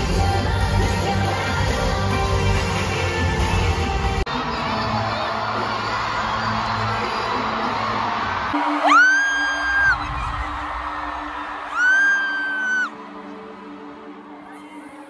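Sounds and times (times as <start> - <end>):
pre-show music: 0.0 - 15.0
stadium crowd noise: 0.0 - 15.0
high-pitched screams of excitement: 8.7 - 10.6, 11.6 - 13.0.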